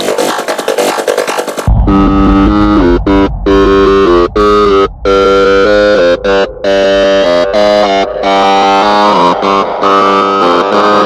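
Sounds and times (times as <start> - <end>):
psytrance synthesizer line: 1.7 - 11.0
steady low bass: 1.7 - 11.0.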